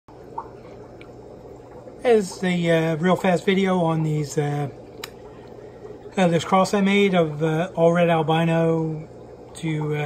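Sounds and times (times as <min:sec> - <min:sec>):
aquarium electrical hum: 0:00.1 - 0:10.0
water trickling: 0:00.1 - 0:10.0.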